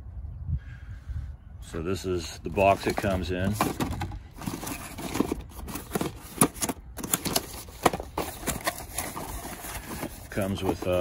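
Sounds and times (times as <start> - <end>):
paper rustling: 2.6 - 11.0
cardboard box being opened: 2.7 - 11.0.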